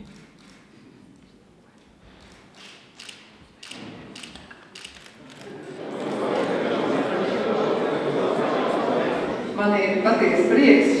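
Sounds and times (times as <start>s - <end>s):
faint room noise murmur: 0.0s - 11.0s
camera shutter clicks: 2.3s - 5.5s.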